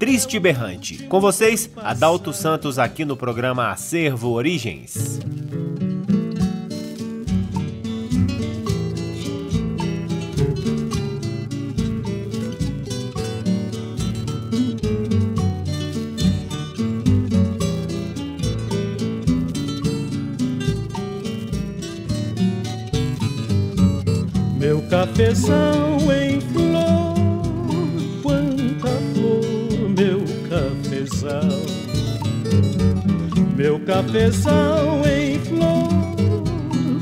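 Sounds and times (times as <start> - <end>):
plucked folk guitar: 0.0 - 37.0.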